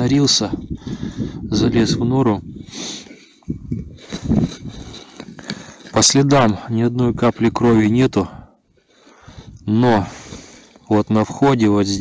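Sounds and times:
crunches in snow and brush: 2.3 - 8.1.

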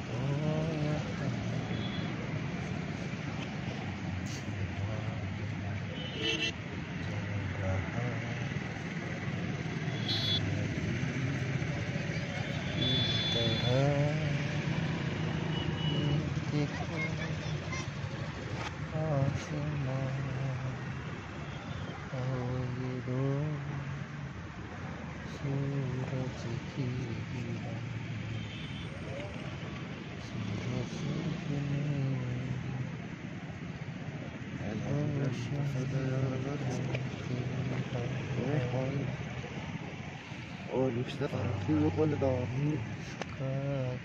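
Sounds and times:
people's voices: 0.0 - 24.4, 25.2 - 44.0
boat engine humming: 0.0 - 43.4
man reciting faintly: 0.0 - 44.0.

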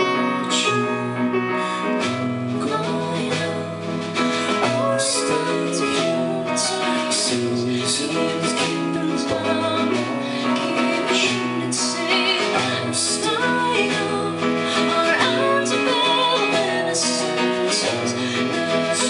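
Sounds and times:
instrumental accompaniment: 0.0 - 19.0
woman singing: 0.0 - 19.0.

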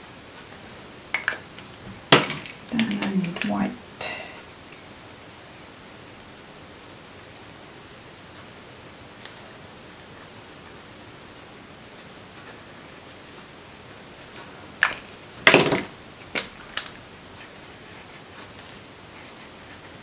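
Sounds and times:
steady low hiss: 0.0 - 20.0.

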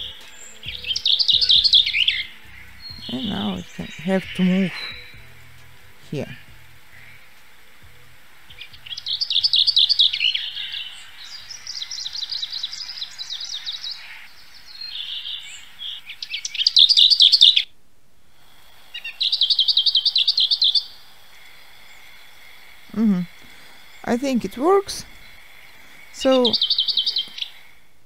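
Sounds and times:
songbird trilling: 0.0 - 7.4, 8.5 - 17.7, 19.0 - 21.0, 23.9 - 27.7.

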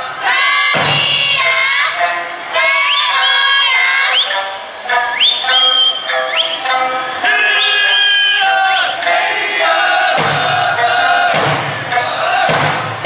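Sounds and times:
sung folk melody: 1.5 - 13.0
sharp finger whistles: 5.1 - 6.8.

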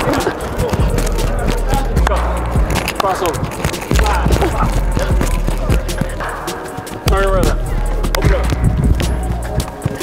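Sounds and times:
music with heavy bass beat: 0.0 - 10.0
person speaking over music: 7.0 - 8.7.

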